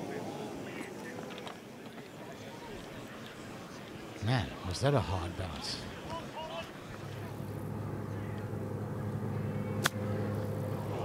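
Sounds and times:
steady low hum: 6.7s - 11.0s
golf club striking ball: 9.8s - 10.2s.

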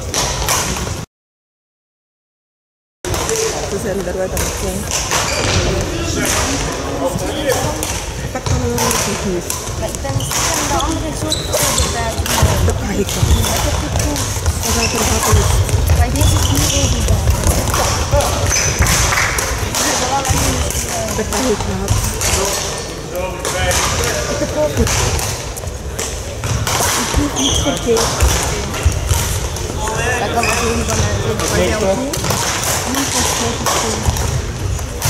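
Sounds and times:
racket hitting shuttlecock: 0.0s - 1.0s, 4.4s - 6.8s, 7.5s - 29.8s, 30.4s - 35.0s
footfalls on court floor: 3.1s - 35.0s
murmur of voices: 3.1s - 35.0s.

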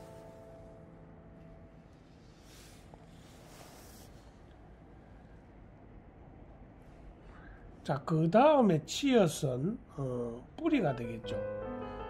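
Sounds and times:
background music notes: 0.0s - 2.8s, 10.6s - 12.0s.

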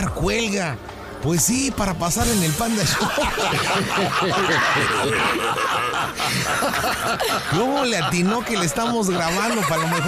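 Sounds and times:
people laughing: 2.6s - 10.0s.

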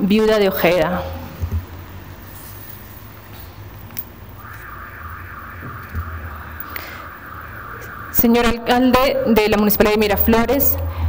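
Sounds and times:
low hum: 4.2s - 10.5s
steady buzzing tone: 4.3s - 10.4s.

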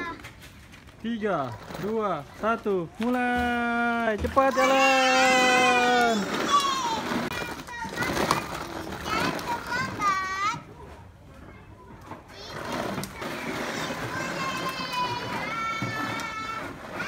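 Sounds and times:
young children calling and squealing: 4.4s - 17.0s.

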